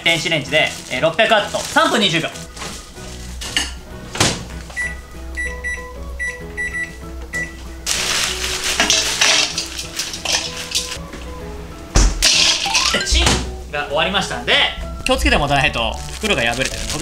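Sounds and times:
ice cubes clattering in metal bowl: 7.9 - 11.0, 12.2 - 13.2.

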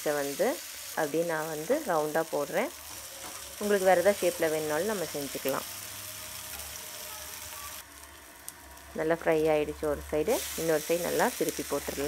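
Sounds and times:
patties sizzling in oil: 0.0 - 12.0.

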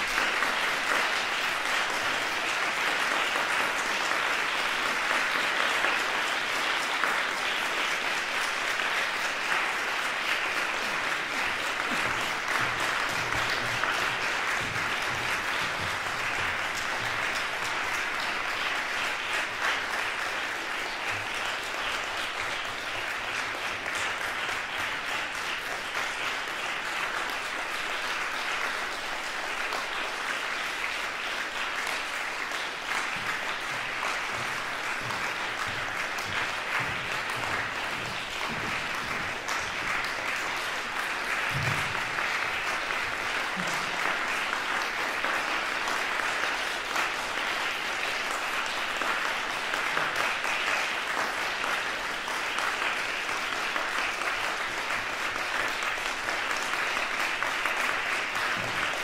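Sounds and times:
audience applauding: 0.0 - 59.0.

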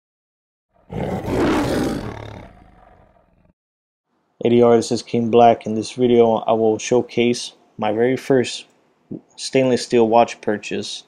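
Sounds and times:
lion roar: 0.8 - 3.5.

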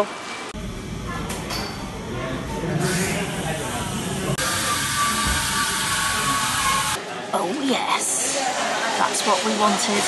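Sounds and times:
steam wand hissing: 2.8 - 7.0.

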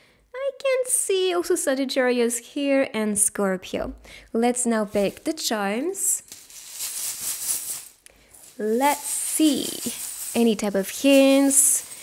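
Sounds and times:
metal charms jingling: 6.3 - 12.0.

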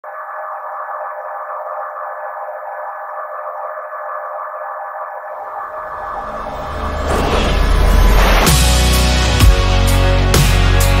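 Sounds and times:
warbling synthesized drone: 0.0 - 9.4
low bass music: 6.0 - 11.0.

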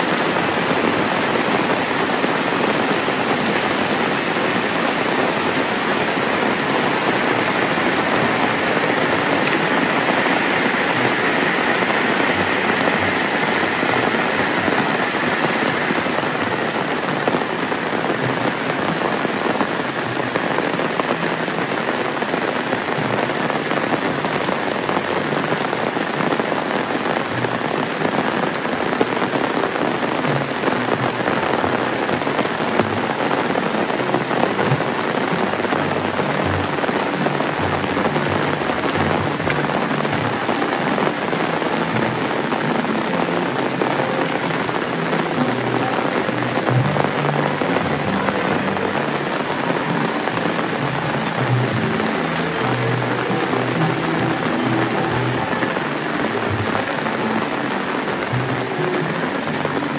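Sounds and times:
heavy rain on roofs and road: 0.0 - 59.9.

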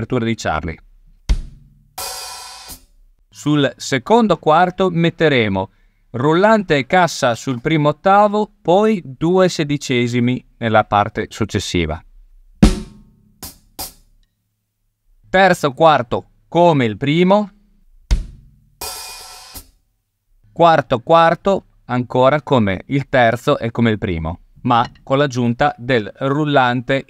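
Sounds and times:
bass drum kick: 1.3 - 2.1, 12.6 - 13.5, 18.1 - 18.8
open hi-hat sizzling: 1.3 - 3.1, 12.6 - 14.2, 18.1 - 19.8
drum hit ringing: 12.6 - 13.6.

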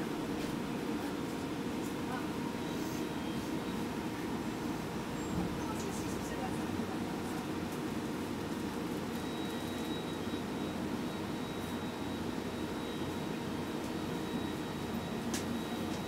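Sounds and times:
bus cabin hum: 0.0 - 16.0.

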